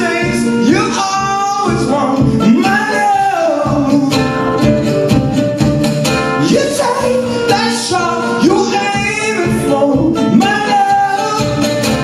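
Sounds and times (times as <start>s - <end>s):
man singing: 0.0s - 5.1s, 6.3s - 12.0s
strummed guitar: 0.0s - 12.0s.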